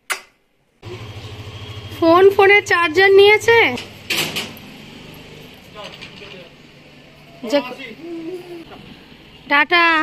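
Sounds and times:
scooter engine idling: 0.8s - 5.4s.

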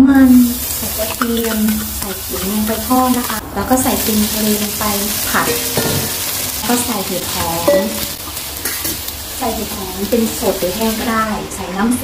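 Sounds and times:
food sizzling in hot oil: 0.0s - 12.0s
spatula scraping a wok: 0.4s - 11.2s.

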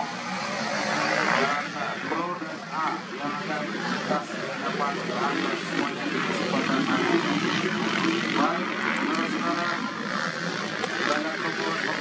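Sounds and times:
motocross bike engines: 0.0s - 12.0s
speech: 10.9s - 12.0s.

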